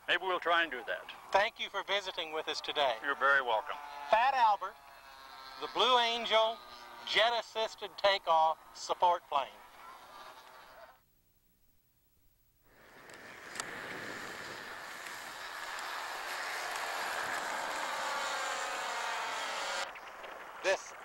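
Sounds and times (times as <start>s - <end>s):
model aircraft engines buzzing: 0.0s - 11.0s, 12.7s - 21.0s.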